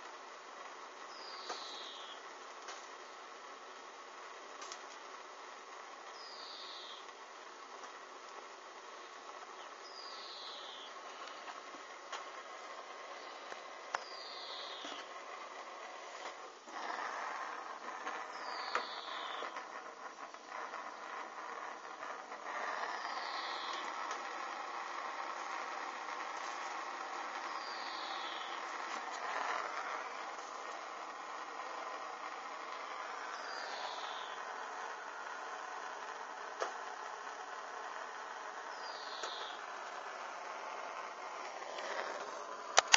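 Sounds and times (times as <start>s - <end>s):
burning material hissing: 0.0s - 42.9s.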